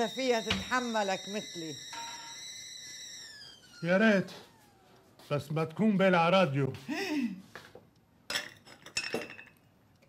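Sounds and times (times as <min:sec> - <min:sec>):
kettle whistling: 0:00.0 - 0:05.1.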